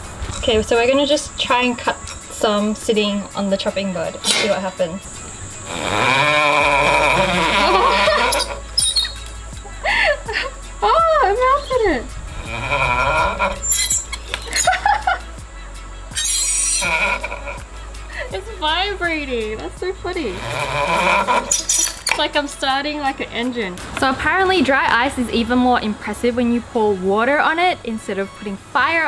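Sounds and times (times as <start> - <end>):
knife squealing on dry ice: 5.8 - 9.3, 12.5 - 14.7, 16.1 - 17.6, 20.3 - 22.2.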